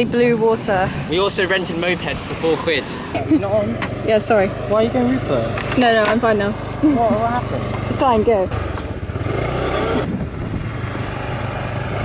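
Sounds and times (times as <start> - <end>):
motor scooter engine running: 3.4 - 12.0.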